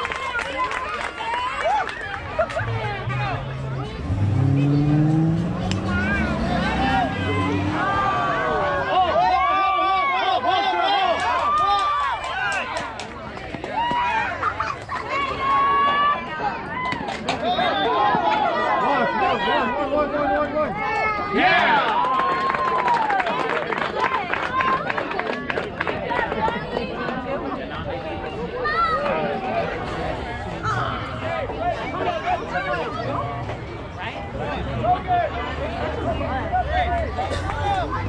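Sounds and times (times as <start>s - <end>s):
children shouting and chattering: 0.0s - 38.0s.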